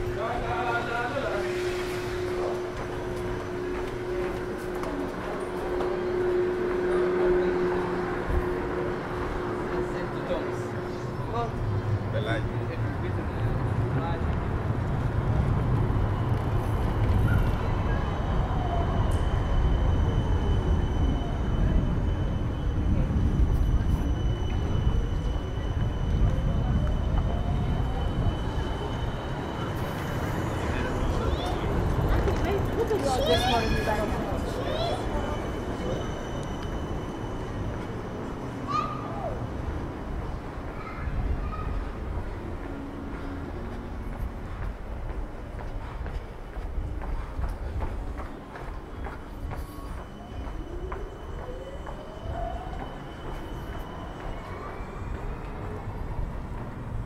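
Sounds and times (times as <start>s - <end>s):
passers-by talking: 0.0s - 57.0s
tram rumbling with motor whine: 0.0s - 57.0s.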